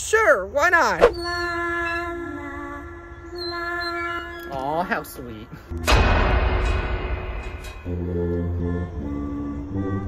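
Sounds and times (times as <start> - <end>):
loud crash-like hit: 5.8 - 8.0
low chant-like chord: 7.7 - 10.0.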